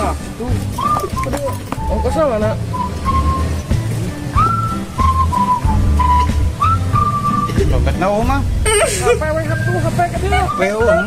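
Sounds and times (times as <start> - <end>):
low steady bass line: 0.0 - 11.0
person whistling a tune: 0.8 - 3.7, 4.3 - 7.7, 9.5 - 11.0.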